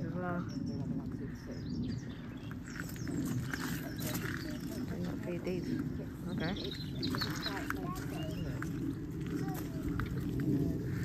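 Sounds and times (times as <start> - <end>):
indistinct background chatter: 0.0 - 11.0.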